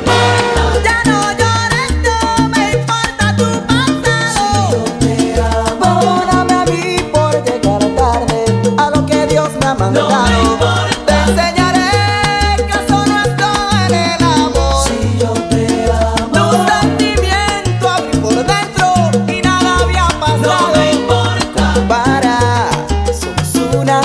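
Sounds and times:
salsa music playing loudly: 0.0s - 24.0s.

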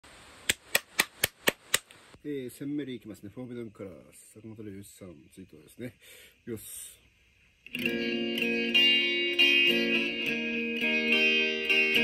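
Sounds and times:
faint hiss: 0.0s - 11.9s.

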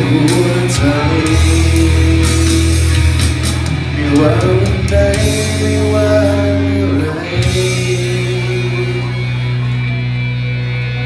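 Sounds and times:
sustained ballad backing chords: 0.0s - 11.0s.

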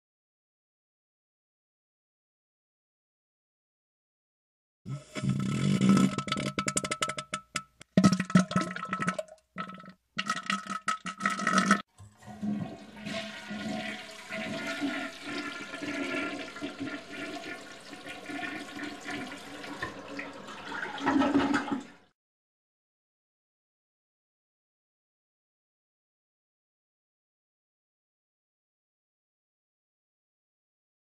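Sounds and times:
toilet flushing: 10.7s - 22.1s.

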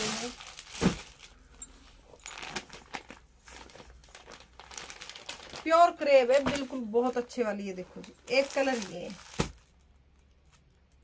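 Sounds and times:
fabric rustling and crinkling: 0.0s - 10.7s.

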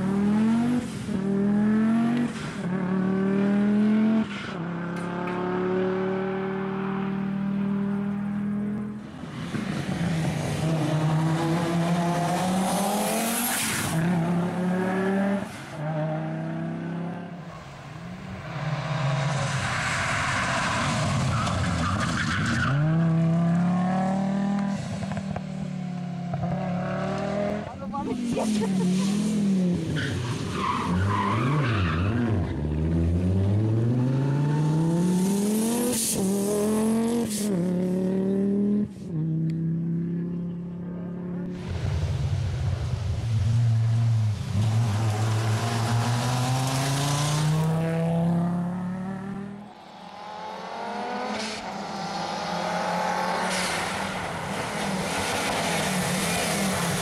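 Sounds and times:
rally car engine revving: 0.0s - 40.7s, 42.7s - 57.0s.

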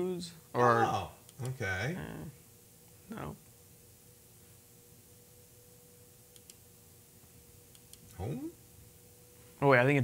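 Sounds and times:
faint steady hum: 0.0s - 10.0s
faint clicks: 6.3s - 6.6s.

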